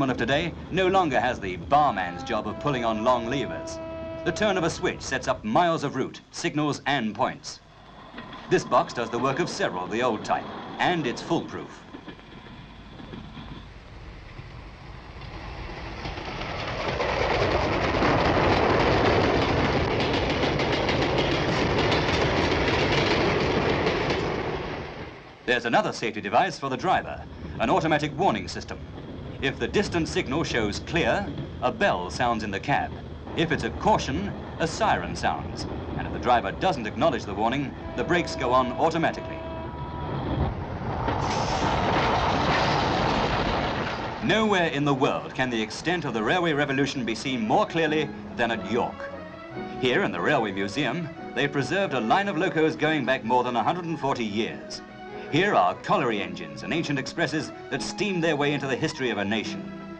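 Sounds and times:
wheels clicking over rail joints: 0:00.0 - 0:59.8
diesel locomotive rushing noise: 0:00.0 - 0:59.9
freight train rumble: 0:00.0 - 0:59.9.

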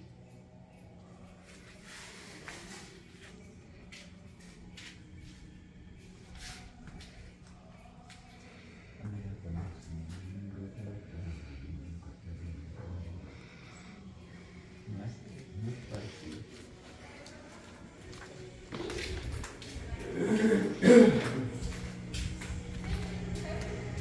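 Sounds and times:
low murmur of voices: 0:00.0 - 0:24.0
steady low hum: 0:00.0 - 0:24.0.

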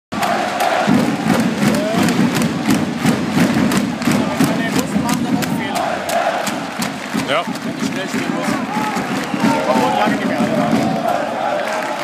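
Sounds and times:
crowd chanting: 0:00.1 - 0:07.5, 0:08.6 - 0:12.0
sharp rhythmic beats: 0:00.1 - 0:12.0.

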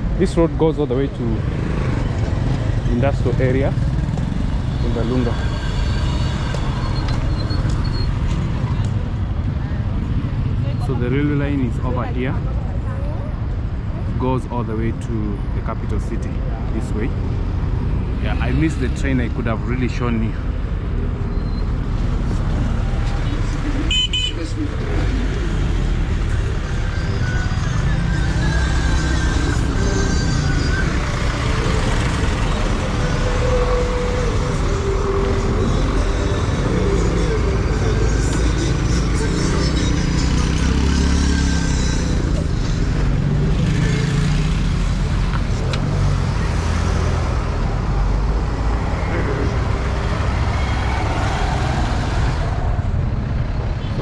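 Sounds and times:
road traffic rumble: 0:00.0 - 0:54.0.

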